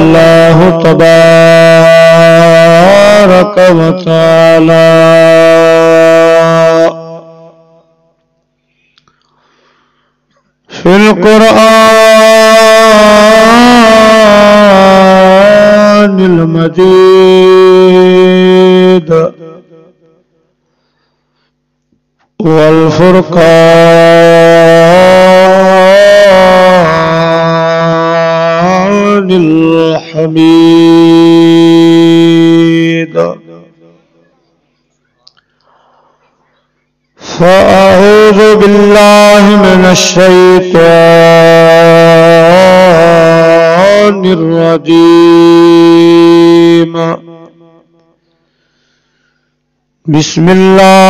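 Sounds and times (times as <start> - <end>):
man chanting long sung note: 0.0 - 8.1, 10.7 - 20.0, 22.4 - 34.6, 37.2 - 47.9, 50.1 - 51.0.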